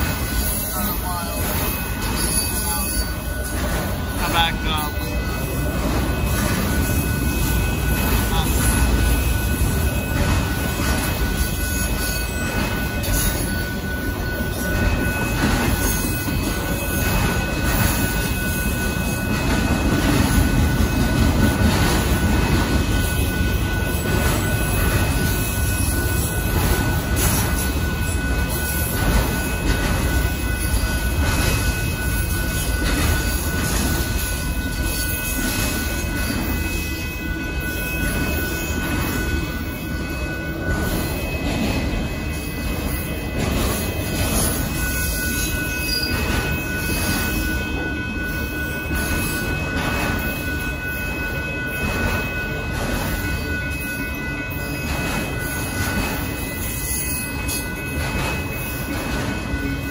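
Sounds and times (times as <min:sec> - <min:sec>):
freight train wheels rumbling: 0:00.0 - 0:59.9
high-pitched wheel squeal: 0:44.4 - 0:47.6.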